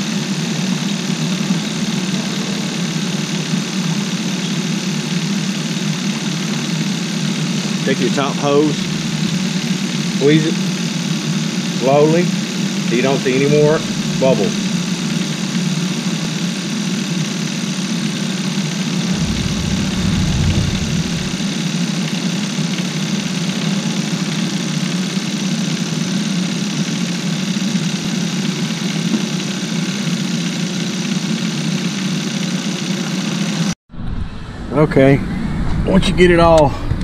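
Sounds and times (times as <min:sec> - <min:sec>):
deeper rumble: 0:07.9 - 0:09.9, 0:13.2 - 0:15.0, 0:19.0 - 0:21.7
car engine idling: 0:07.9 - 0:10.0, 0:12.9 - 0:15.2, 0:19.1 - 0:21.5.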